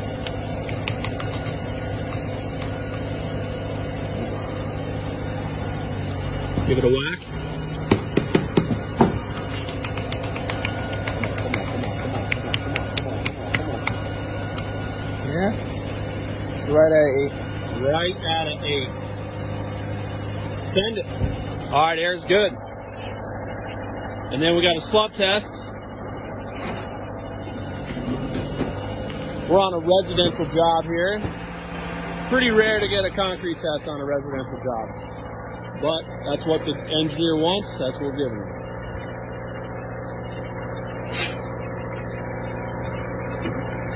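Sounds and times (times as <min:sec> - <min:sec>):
steady engine hum: 0:00.0 - 0:43.9
sharp taps on a gauge: 0:07.9 - 0:14.7.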